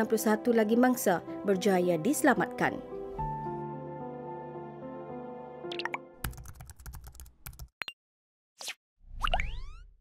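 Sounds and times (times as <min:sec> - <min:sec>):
keyboard typing clicks: 0:05.7 - 0:07.7.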